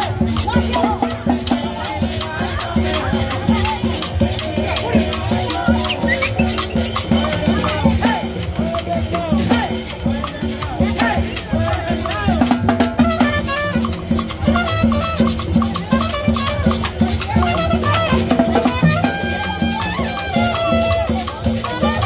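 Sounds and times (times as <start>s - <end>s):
drums keeping a steady beat: 0.0s - 22.0s
trumpet playing held notes: 13.0s - 22.0s.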